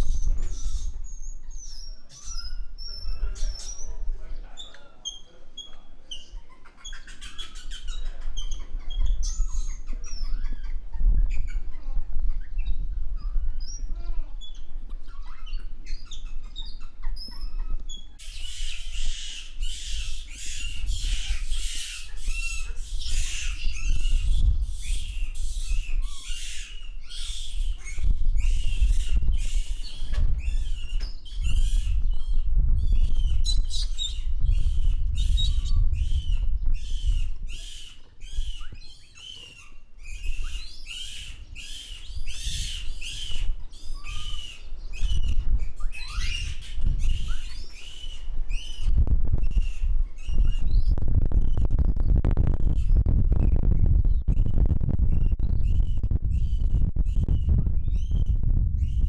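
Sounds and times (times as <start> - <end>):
high-pitched chirping calls: 0.0 - 51.8
low rumble: 48.8 - 59.0.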